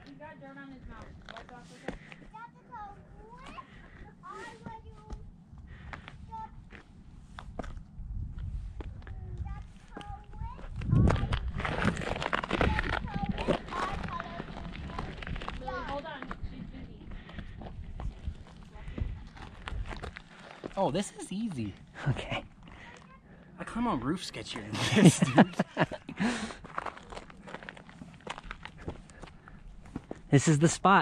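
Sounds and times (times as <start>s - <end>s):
camera handling rumble: 10.6s - 15.6s
hands and shoes scraping on rock: 10.6s - 16.4s.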